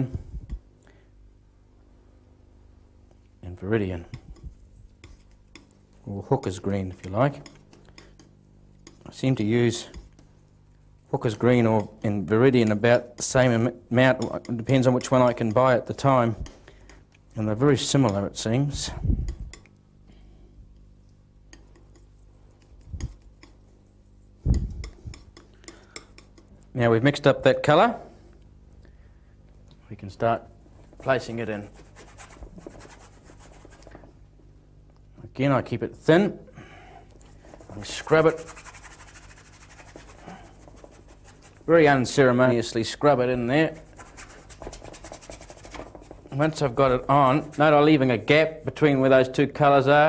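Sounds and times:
paintbrush scratching on canvas: 0:04.8 - 0:05.6, 0:31.0 - 0:34.0, 0:37.3 - 0:41.7, 0:43.7 - 0:47.8.

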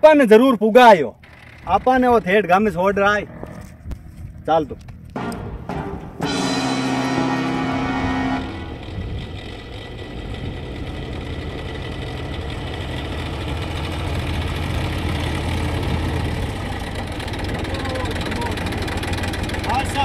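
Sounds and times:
tractor engine rumbling: 0:00.0 - 0:20.0
brief music: 0:05.2 - 0:09.0.

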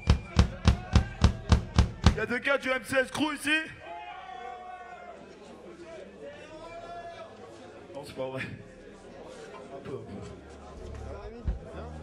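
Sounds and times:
drum kit hits: 0:00.0 - 0:02.3.

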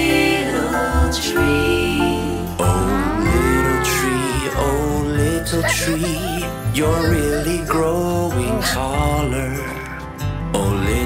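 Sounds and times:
children's song backing track: 0:00.0 - 0:11.0.

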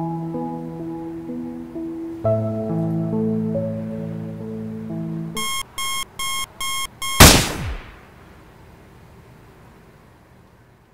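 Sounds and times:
background music: 0:00.0 - 0:06.1
alarm clock beeping: 0:05.4 - 0:07.3
loud gunshot: 0:07.2 - 0:08.1.

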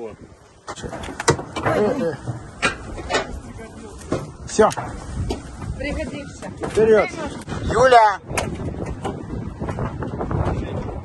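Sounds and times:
rustling and scraping: 0:00.6 - 0:10.8.

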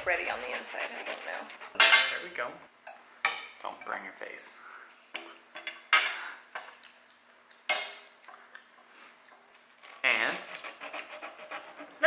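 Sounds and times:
cutlery clinking on plates: 0:07.7 - 0:08.1.

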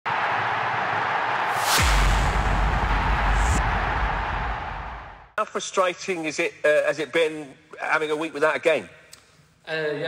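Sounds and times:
whoosh: 0:01.5 - 0:05.4
deep bass hit: 0:01.6 - 0:05.4.

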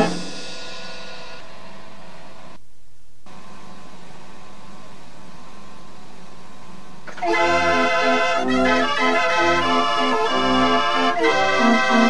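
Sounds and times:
dance organ notes: 0:00.0 - 0:00.8, 0:07.0 - 0:12.0
steady hiss: 0:00.0 - 0:07.3
faint low hum: 0:00.0 - 0:12.0.

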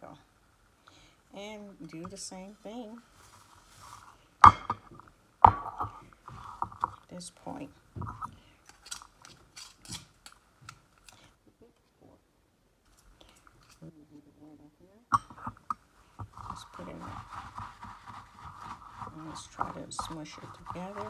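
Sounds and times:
spoon knocking against bowl: 0:15.1 - 0:15.7
spoon scraping dry oats in bowl: 0:15.1 - 0:21.0.

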